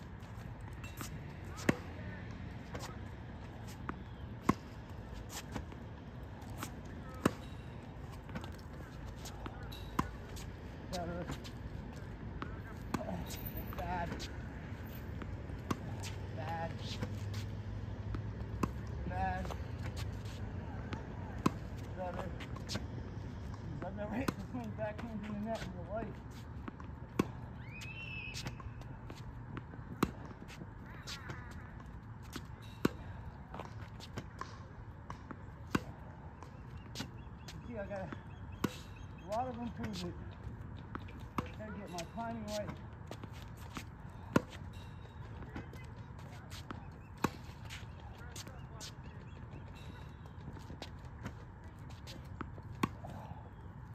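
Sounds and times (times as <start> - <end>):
tennis ball bouncing: 0.2 - 53.9
racket hitting tennis ball: 40.9 - 48.6.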